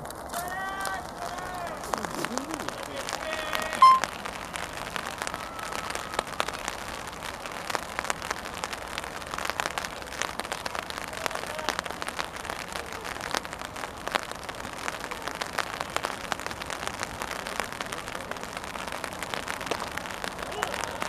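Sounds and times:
light rain pattering: 0:00.0 - 0:21.0
short loud beep: 0:03.8 - 0:04.1.

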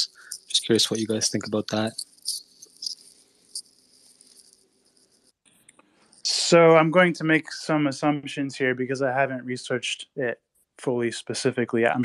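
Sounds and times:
microphone hiss and hum: 0:00.0 - 0:03.2, 0:06.3 - 0:09.5, 0:10.9 - 0:12.0
soft noises: 0:00.0 - 0:04.5, 0:06.1 - 0:12.0.

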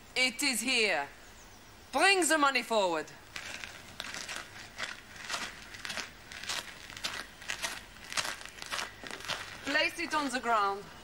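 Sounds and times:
footsteps crunching on dry ground: 0:03.2 - 0:11.0.

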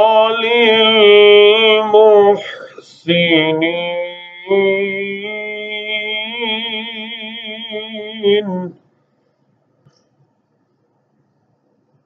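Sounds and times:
man chanting melodically: 0:00.0 - 0:08.8.

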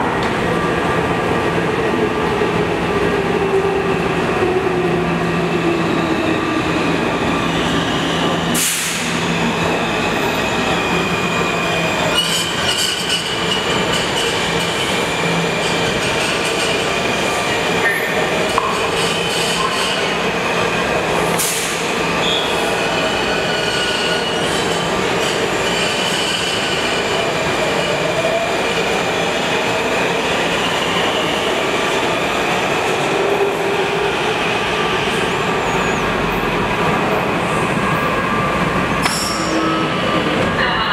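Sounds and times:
subway train rumble: 0:00.0 - 0:40.9
train wheel squeal: 0:09.6 - 0:14.3, 0:21.4 - 0:27.1, 0:35.5 - 0:36.1.

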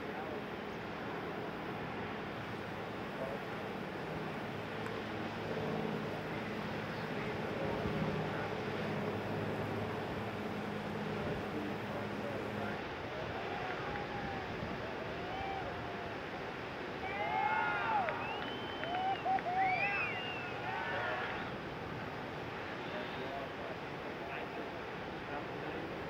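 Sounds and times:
surf washing: 0:00.0 - 0:26.0
wind: 0:00.0 - 0:26.0.

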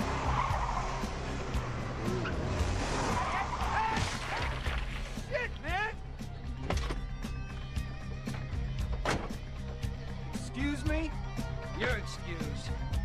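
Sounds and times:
film soundtrack music: 0:00.0 - 0:13.0.

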